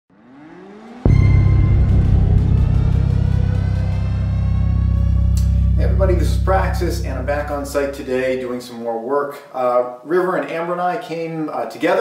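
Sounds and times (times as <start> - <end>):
rising music swell: 0.1 - 8.5
deep hit with low drone: 1.0 - 8.4.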